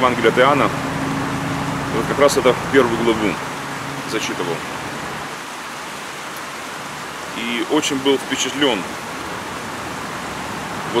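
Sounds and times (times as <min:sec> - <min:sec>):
waterfall rushing: 0:00.0 - 0:11.0.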